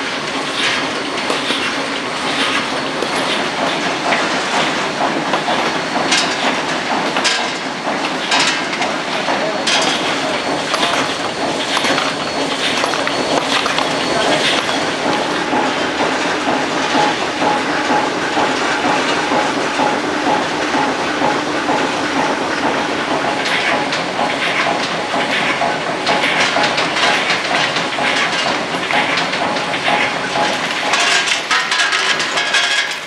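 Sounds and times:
machinery metallic clatter: 0:00.0 - 0:33.0.

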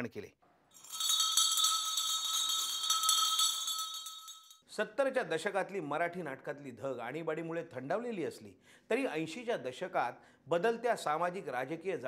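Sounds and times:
shimmering bell-like chime: 0:00.8 - 0:04.6.

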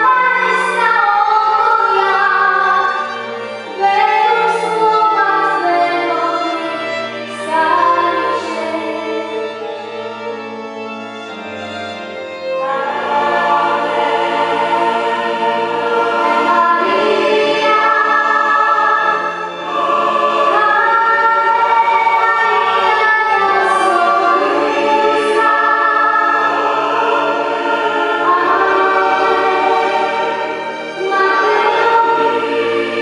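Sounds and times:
mixed choir singing: 0:00.0 - 0:10.0, 0:12.4 - 0:33.0.

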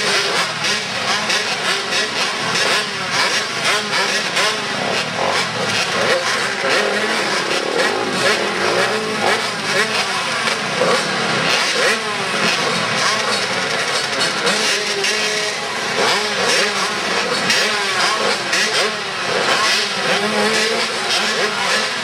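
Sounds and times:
pit bike engines revving: 0:00.0 - 0:22.0.

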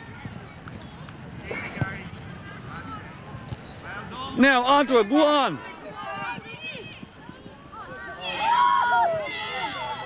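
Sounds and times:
distant shouts of players: 0:01.7 - 0:10.0.

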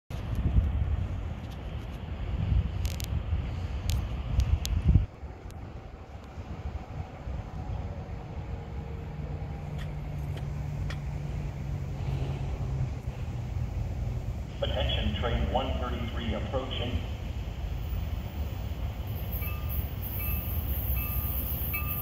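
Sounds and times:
wind buffeting microphone: 0:00.1 - 0:14.5
distant train rumble: 0:00.1 - 0:22.0.

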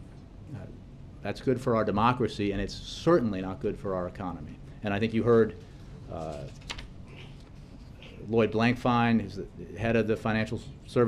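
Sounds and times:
man speaking: 0:00.5 - 0:06.6, 0:08.1 - 0:11.0.

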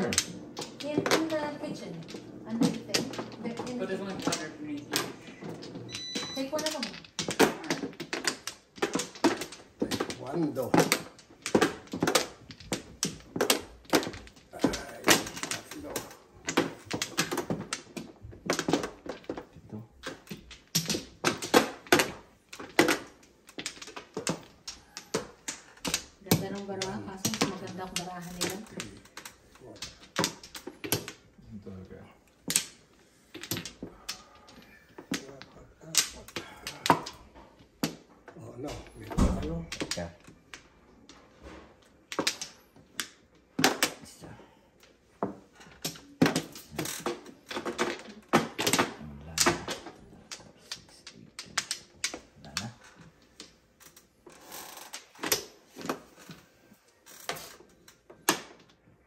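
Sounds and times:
mahjong tiles clacking: 0:00.0 - 0:31.5, 0:32.3 - 0:38.1, 0:38.8 - 0:41.2, 0:41.8 - 0:44.0, 0:44.8 - 0:56.5.

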